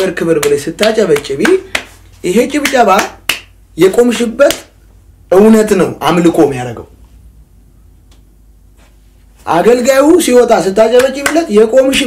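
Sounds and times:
man speaking: 0.0s - 3.2s, 3.8s - 4.7s, 5.3s - 7.0s, 9.4s - 12.0s.

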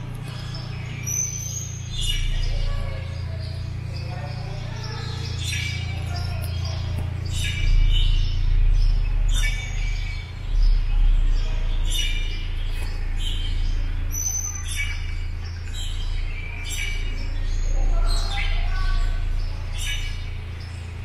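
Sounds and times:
small birds chirping: 0.0s - 21.0s
steady low rumble: 0.0s - 21.0s.

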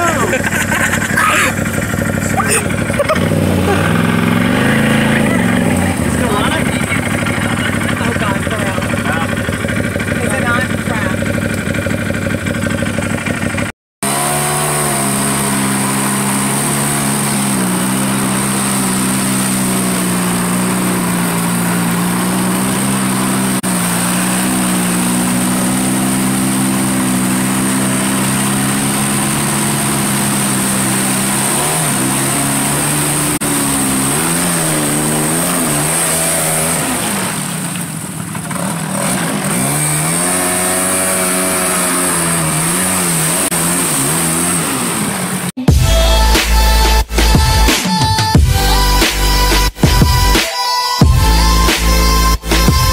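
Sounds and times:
off-road vehicle engine revving: 0.0s - 50.4s, 51.0s - 52.9s.

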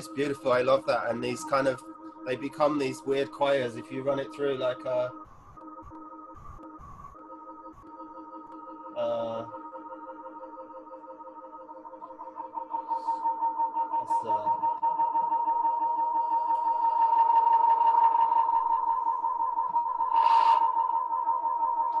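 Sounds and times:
synthesizer feedback drone: 0.0s - 22.0s.

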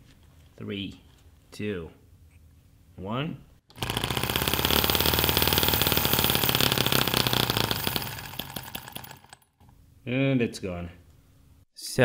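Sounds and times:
model engine running fast: 3.7s - 9.4s.

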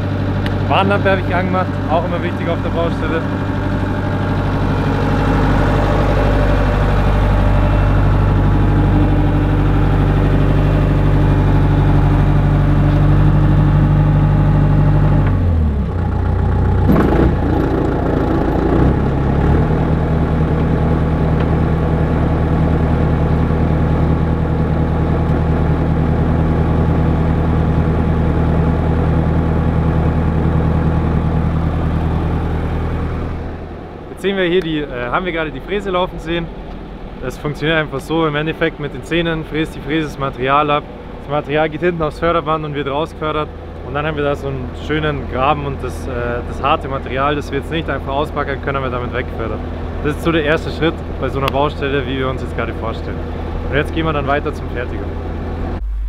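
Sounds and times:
engine knock: 0.0s - 33.2s
diesel engine running: 0.0s - 56.0s.

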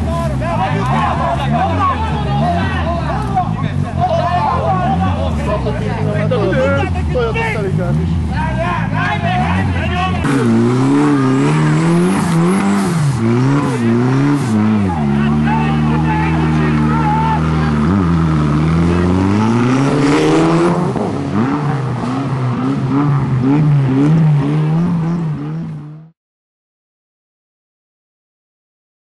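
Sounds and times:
car engine revving: 0.0s - 26.2s
people shouting: 0.1s - 5.4s, 13.4s - 17.8s.

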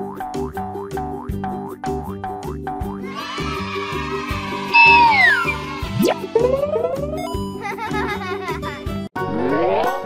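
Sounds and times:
children's background music: 0.0s - 10.0s
meow-like cry sliding down: 4.7s - 5.6s
quick rising sweep: 4.8s - 5.6s.

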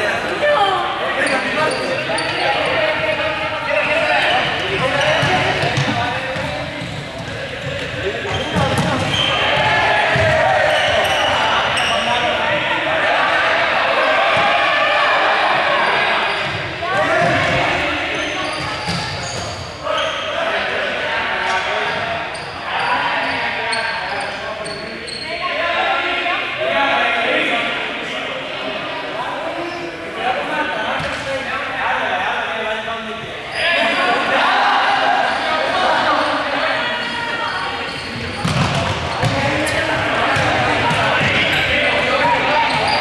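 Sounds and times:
group talking and calling out: 0.0s - 43.0s.

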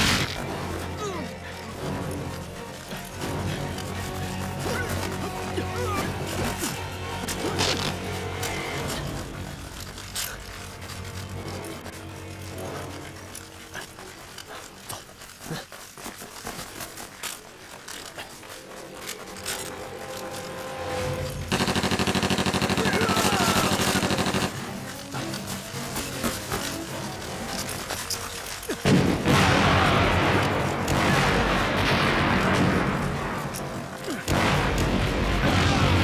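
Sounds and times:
action film score: 0.0s - 36.0s
loud rapid rattling burst: 21.5s - 24.6s.

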